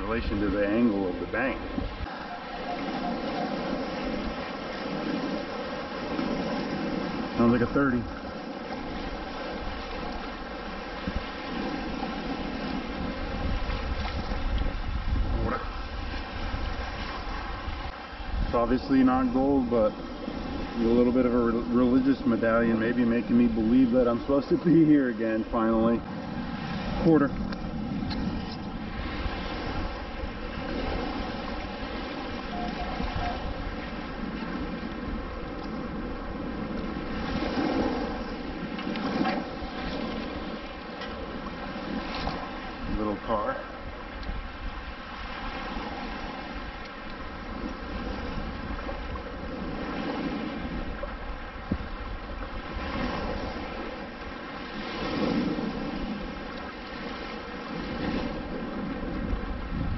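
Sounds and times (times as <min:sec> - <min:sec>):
shallow surf washing: 0:00.0 - 0:59.9
wind on microphone: 0:00.0 - 0:59.9.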